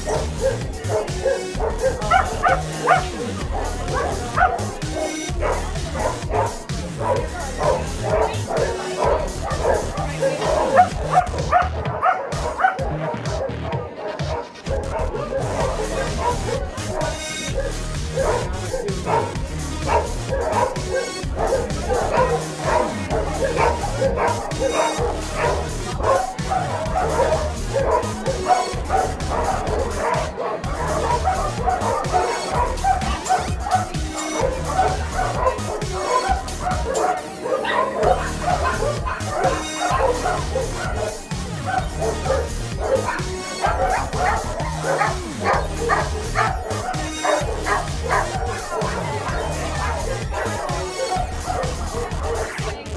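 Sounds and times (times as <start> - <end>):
background music with low beat: 0.0 - 52.9
dogs barking and yipping: 0.0 - 52.9.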